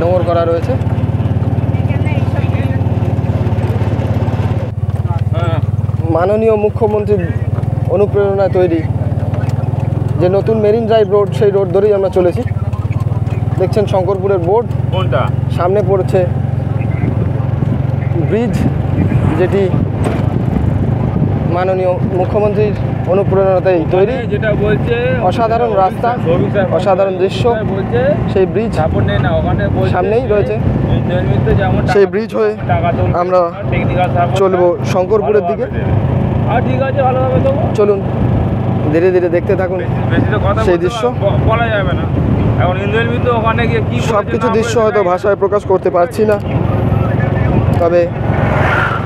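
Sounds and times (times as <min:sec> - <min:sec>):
vehicle engine and road noise: 0:00.0 - 0:49.0.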